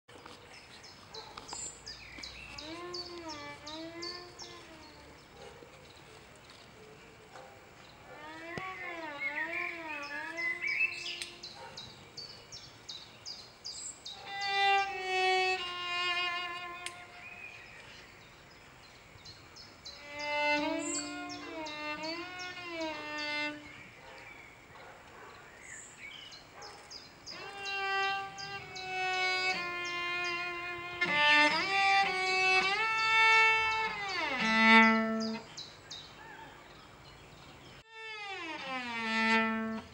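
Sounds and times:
bird chirping: 0:00.1 - 0:37.9
slow cello playing: 0:02.5 - 0:05.2, 0:08.2 - 0:11.4, 0:14.3 - 0:17.8, 0:20.0 - 0:23.8, 0:27.3 - 0:35.6, 0:37.8 - 0:39.9.

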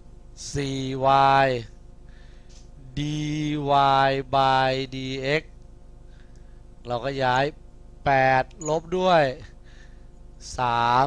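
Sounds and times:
man speaking in sing-song: 0:00.4 - 0:01.6, 0:10.4 - 0:11.0.

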